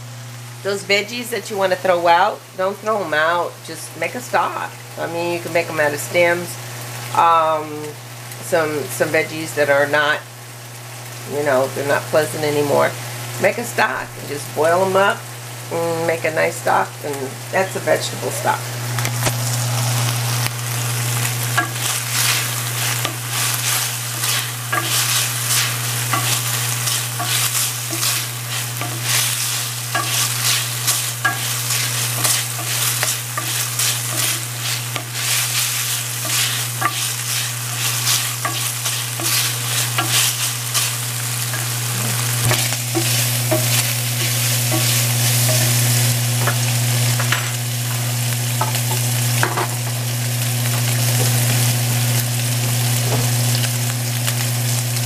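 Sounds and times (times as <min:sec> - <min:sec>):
beef sizzling in a pan: 0:00.0 - 0:55.0
wooden spoon scraping a pan: 0:21.5 - 0:46.6.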